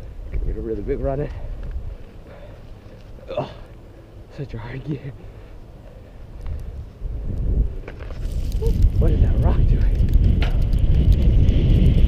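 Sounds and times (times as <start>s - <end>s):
wind rumbling on microphone: 0.0s - 3.2s, 5.2s - 12.0s
bike tyres rolling on dirt: 0.0s - 3.9s, 4.9s - 12.0s
bike clicks and rattles: 6.3s - 12.0s.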